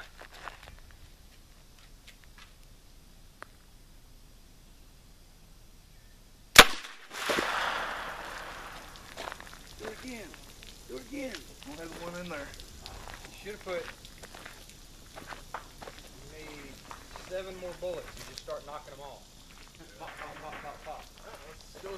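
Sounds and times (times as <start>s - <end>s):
suppressed gunshot: 6.6s - 8.8s
water splashing and spattering: 6.6s - 19.0s.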